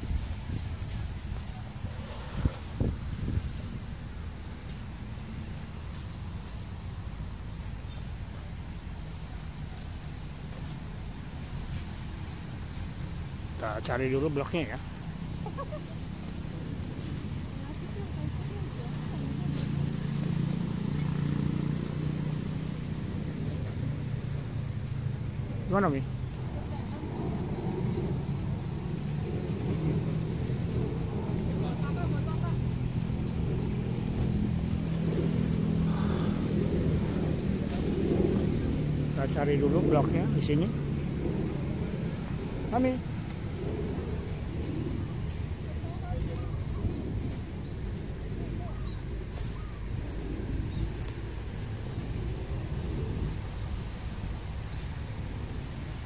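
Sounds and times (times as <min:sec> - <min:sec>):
faint rustle: 0:00.0 - 0:56.0
low engine drone: 0:00.0 - 0:56.0
low rumble: 0:00.0 - 0:56.0
faint voices: 0:13.6 - 0:22.0, 0:23.3 - 0:51.0.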